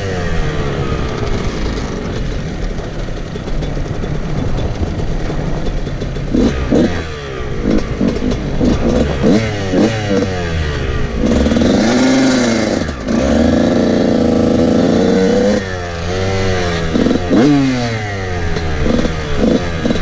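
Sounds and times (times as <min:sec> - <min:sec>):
dirt bike engine revving: 0:00.0 - 0:20.0.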